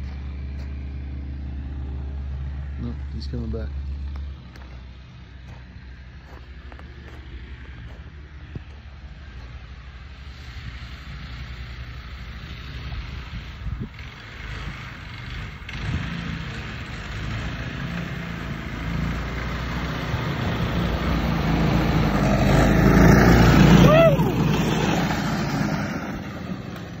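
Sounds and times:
small engine passing by: 0:00.0 - 0:27.0.

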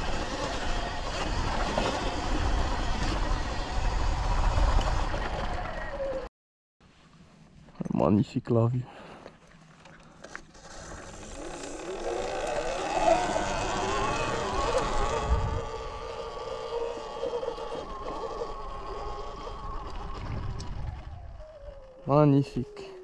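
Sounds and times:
electric motor whining: 0:00.0 - 0:06.3, 0:10.5 - 0:22.1.

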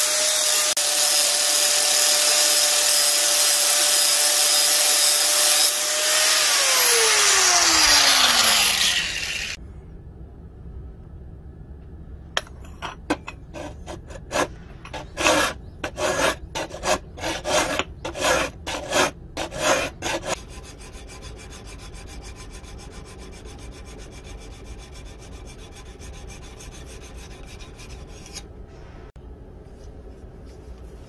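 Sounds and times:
file scraping steel blade: 0:00.0 - 0:09.6, 0:12.4 - 0:28.5.

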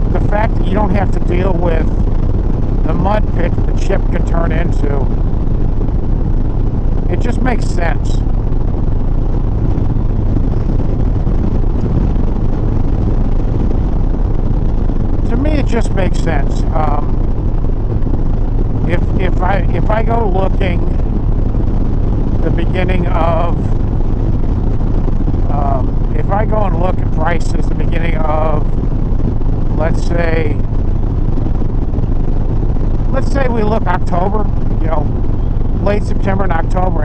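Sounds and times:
motorcycle engine cruising: 0:00.0 - 0:37.0
wind and road noise: 0:00.0 - 0:37.0.

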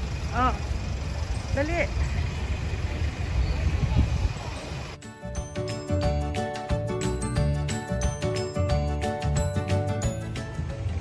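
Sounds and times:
traffic rumble: 0:00.0 - 0:05.0.

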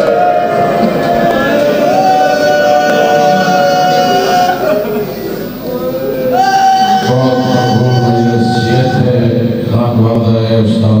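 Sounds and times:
man chanting into a microphone: 0:05.7 - 0:11.0.

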